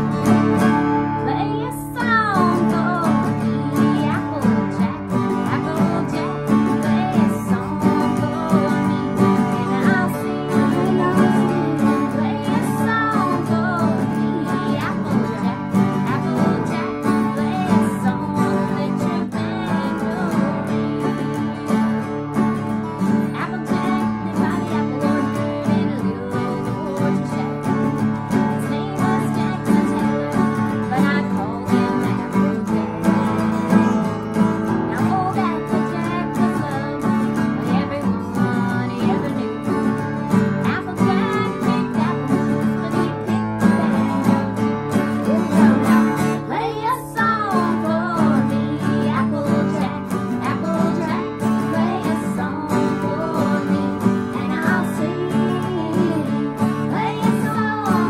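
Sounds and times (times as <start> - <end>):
acoustic guitars strumming: 0.0 - 58.0
women singing: 0.0 - 58.0.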